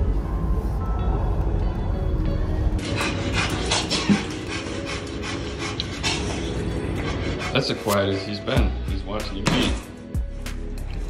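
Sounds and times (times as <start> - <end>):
faint background music: 0.0 - 11.0
dog panting: 2.8 - 8.0.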